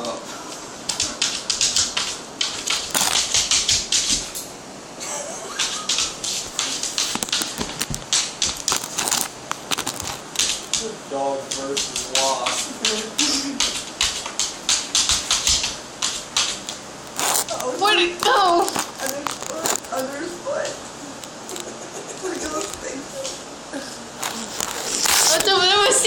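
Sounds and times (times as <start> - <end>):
dog claws scratching on wood: 1.3 - 4.4, 5.8 - 10.8, 11.5 - 20.3, 24.2 - 26.0.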